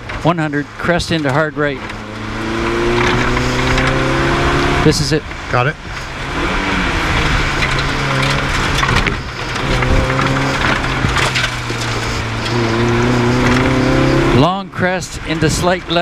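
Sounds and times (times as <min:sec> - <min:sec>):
car engine at steady revs: 0:00.0 - 0:16.0
road and tyre noise: 0:00.0 - 0:16.0.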